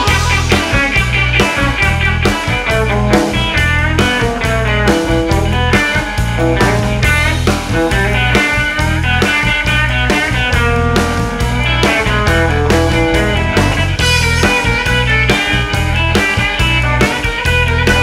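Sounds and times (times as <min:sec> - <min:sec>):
guitar-led band playing: 0:00.0 - 0:18.0.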